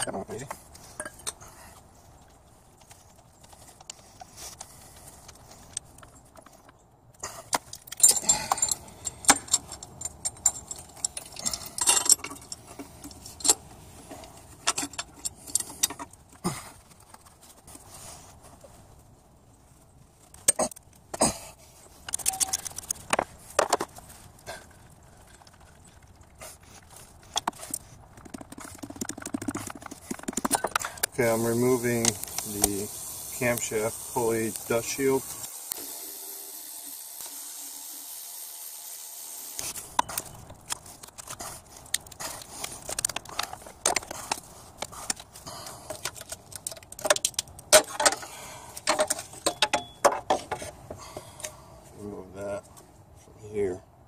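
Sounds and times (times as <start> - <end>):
metal tools clinking: 0.9 - 1.4, 7.7 - 16.1, 22.1 - 22.9, 48.8 - 50.1.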